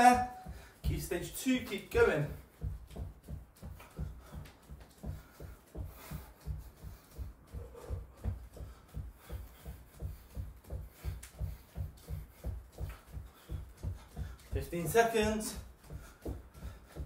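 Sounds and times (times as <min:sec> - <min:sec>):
feet thudding on wooden floor: 0:00.3 - 0:17.0.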